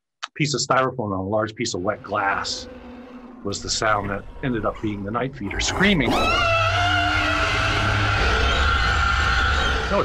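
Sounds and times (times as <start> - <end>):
long creature screech: 1.9 - 10.0.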